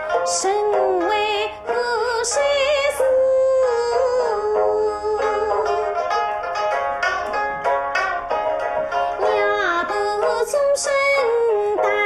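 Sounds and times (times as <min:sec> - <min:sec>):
plucked string accompaniment: 0:00.0 - 0:12.0.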